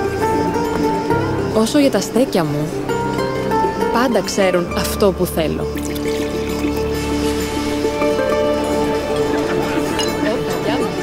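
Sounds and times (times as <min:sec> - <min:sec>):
background music: 0:00.0 - 0:11.0
drinking glasses clinking: 0:08.7 - 0:11.0.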